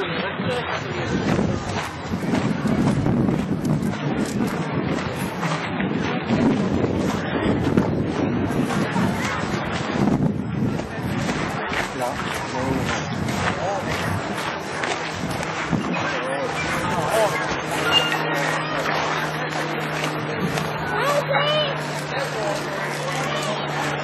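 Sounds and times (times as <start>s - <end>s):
people talking in background: 0.0s - 24.0s.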